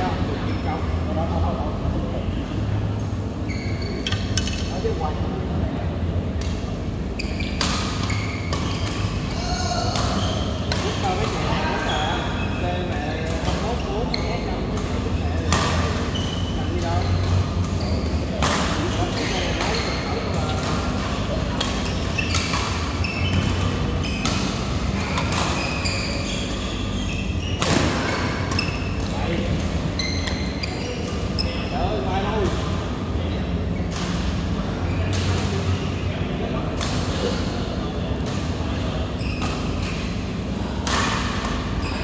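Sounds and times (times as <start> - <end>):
steady low hum: 0.0 - 42.0
players' voices: 4.5 - 42.0
badminton rackets hitting shuttlecock: 7.4 - 11.5, 20.5 - 26.6.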